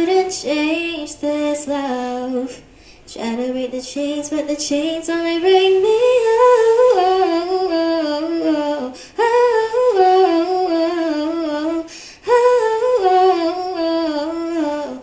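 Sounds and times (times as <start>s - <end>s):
woman singing unaccompanied: 0.0s - 15.0s.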